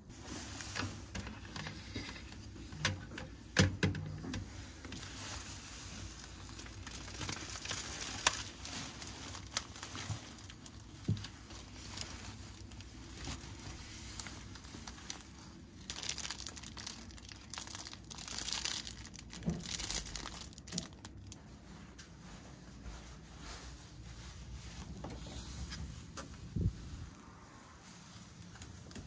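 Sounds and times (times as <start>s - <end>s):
fabric and bag rustling: 4.5s - 28.9s.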